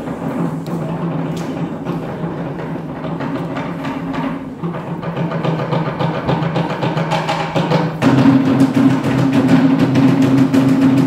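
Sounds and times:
music with steady drum beat: 0.0s - 11.0s.

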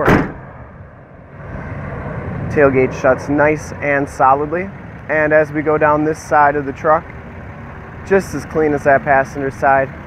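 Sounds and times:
steel tailgate slamming shut: 0.0s - 0.5s.

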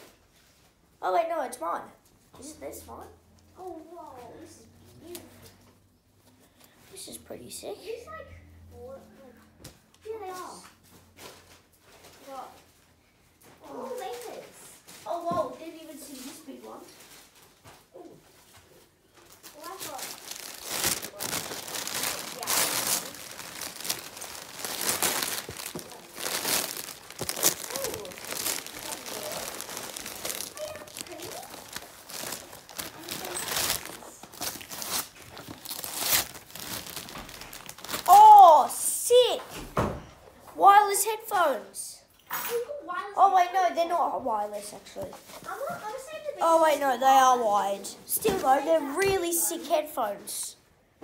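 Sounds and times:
wrapping paper crinkling and tearing: 19.1s - 38.9s
boy exclaiming loudly: 30.5s - 31.7s, 38.0s - 39.5s, 40.6s - 44.1s, 45.5s - 50.5s.

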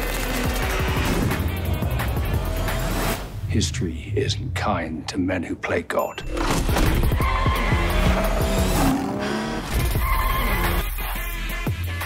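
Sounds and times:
tyre squeals: 6.9s - 10.9s
engine revs: 6.9s - 11.0s.

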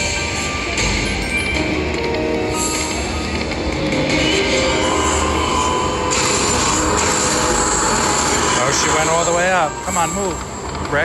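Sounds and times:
slot machine game music: 0.0s - 11.0s
slot machine reel sound effects: 0.0s - 11.0s.

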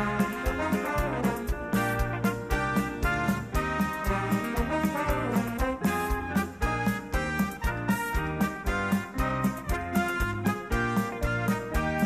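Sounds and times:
orchestra brass section playing: 0.0s - 12.0s
steady drum beat: 0.0s - 12.0s.

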